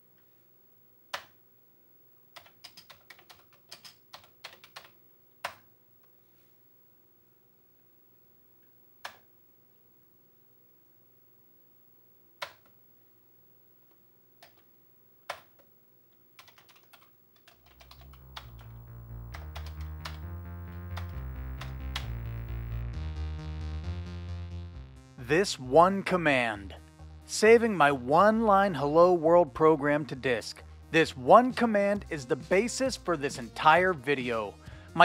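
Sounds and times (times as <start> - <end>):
faint steady hum: 0.0 - 32.4
keyboard keystrokes: 2.4 - 5.7, 12.4 - 12.7, 15.3 - 15.7, 16.4 - 20.3
background music: 17.6 - 35.0.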